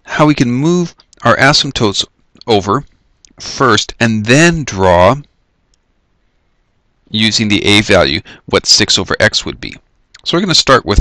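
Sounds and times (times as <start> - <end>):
man's voice: 0.0 - 2.8, 3.4 - 5.2, 7.1 - 11.0.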